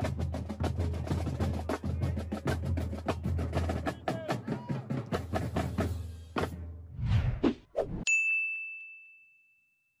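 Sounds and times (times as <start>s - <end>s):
bell-like ding: 8.1s - 10.0s.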